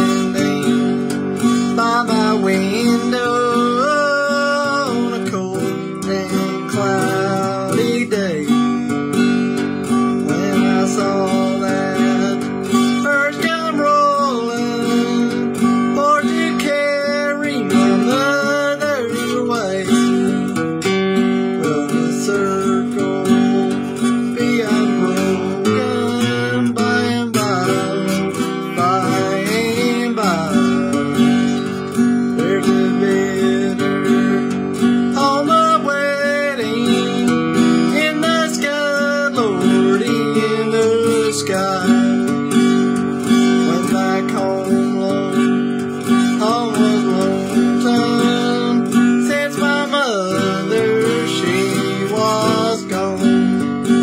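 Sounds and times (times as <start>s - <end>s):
acoustic guitar strumming chords: 0.0s - 54.0s.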